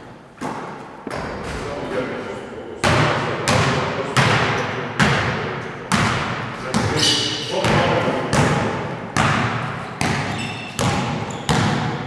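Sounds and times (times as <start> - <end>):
basketball bouncing on wood floor: 2.8 - 7.0, 7.6 - 12.0.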